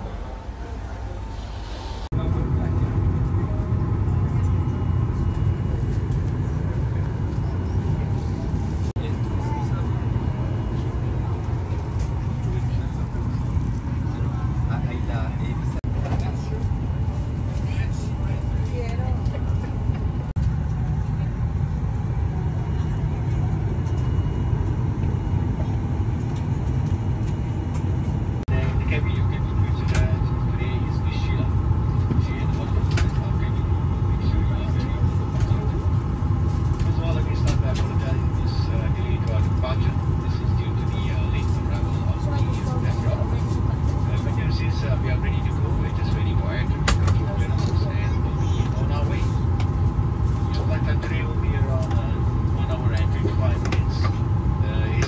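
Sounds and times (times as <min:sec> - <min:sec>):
low rumble of aircraft air systems: 0:00.0 - 0:55.0
passengers murmuring: 0:00.0 - 0:55.0.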